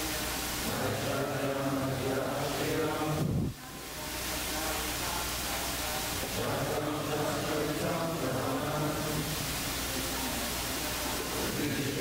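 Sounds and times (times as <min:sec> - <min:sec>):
person chanting melodically: 0:00.0 - 0:12.0
steady hiss: 0:00.0 - 0:12.0.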